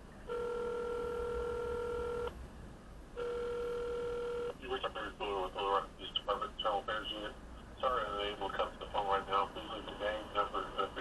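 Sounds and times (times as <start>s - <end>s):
telephone ringing tone: 0.3s - 2.3s, 3.2s - 4.6s
voice talking on phone line: 4.6s - 11.0s.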